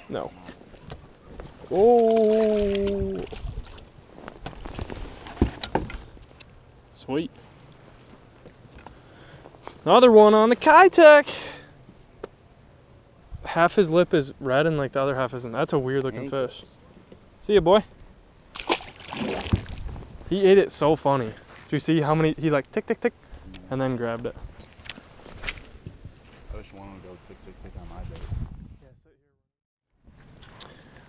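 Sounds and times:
water sloshing: 1.6s - 6.3s, 18.5s - 20.2s
fish splashing into water: 18.5s - 19.8s.

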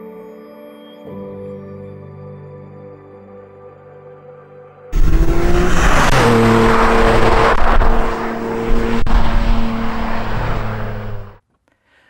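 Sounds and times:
sports car engine at high revs: 5.0s - 11.4s.

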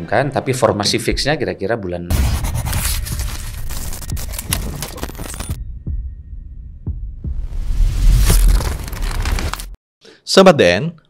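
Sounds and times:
deep heartbeat-like thumps: 5.6s - 8.3s.

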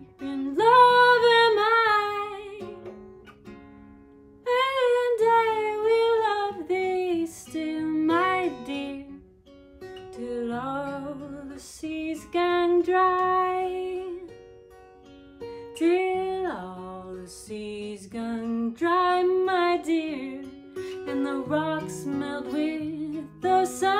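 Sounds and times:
acoustic guitar: 0.0s - 23.9s
woman singing folk song: 0.0s - 23.9s.

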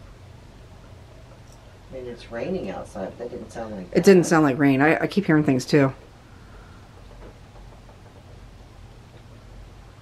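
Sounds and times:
low hum: 0.0s - 10.0s
faint hiss: 5.4s - 10.0s.

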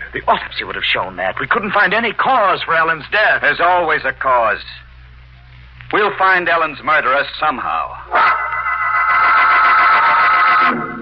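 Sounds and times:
loud organ chord: 8.1s - 11.0s.

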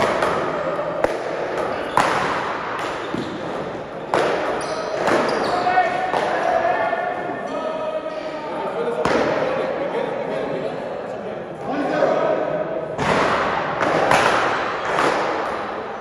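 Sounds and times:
people talking: 5.0s - 13.3s.

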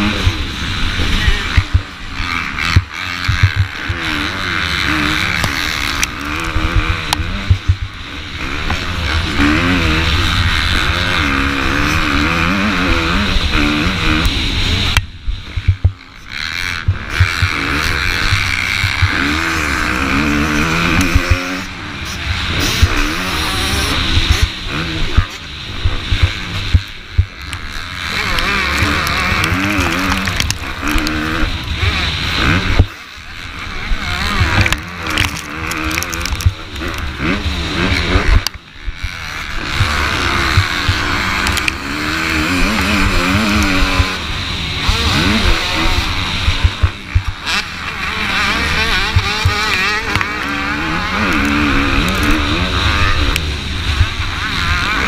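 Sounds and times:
motocross bike engine revving: 0.0s - 55.0s
wind rumble on microphone: 0.0s - 55.0s.

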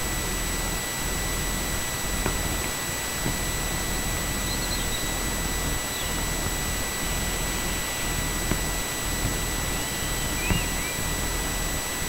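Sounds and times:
faint high bird chirps: 4.4s - 5.2s, 9.7s - 11.1s.

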